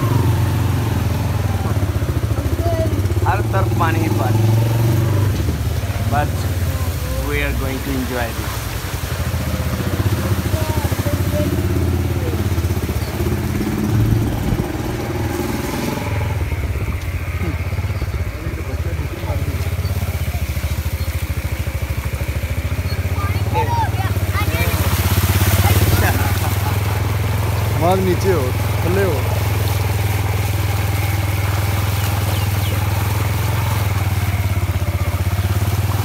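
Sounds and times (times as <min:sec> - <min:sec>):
distant voices: 0:00.0 - 0:36.0
motorcycle engine running: 0:00.0 - 0:36.0.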